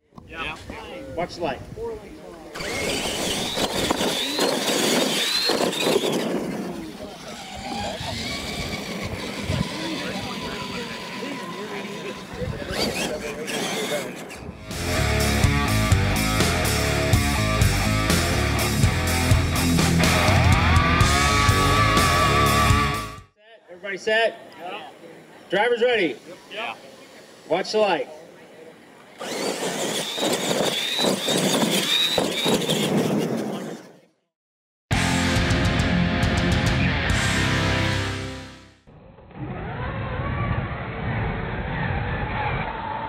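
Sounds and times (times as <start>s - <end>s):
voices: 0.0s - 14.6s, 23.4s - 33.9s
tyres on dirt: 2.3s - 15.1s, 28.6s - 34.1s
electric motors whining: 2.5s - 23.2s, 29.0s - 34.0s
music with heavy beat: 14.7s - 23.2s, 34.9s - 38.6s.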